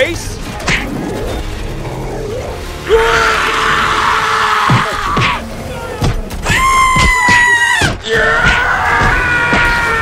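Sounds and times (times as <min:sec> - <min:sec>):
movie trailer music: 0:00.0 - 0:10.0.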